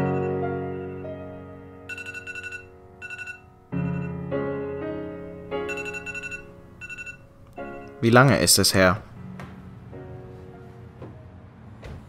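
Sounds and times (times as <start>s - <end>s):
soft piano music: 0.0s - 12.0s
rapid high alarm beeps: 1.9s - 4.1s.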